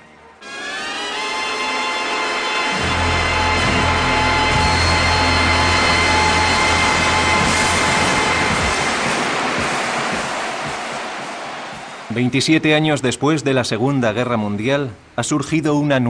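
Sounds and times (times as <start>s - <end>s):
music: 0.0s - 11.5s
stadium crowd cheering: 0.0s - 13.9s.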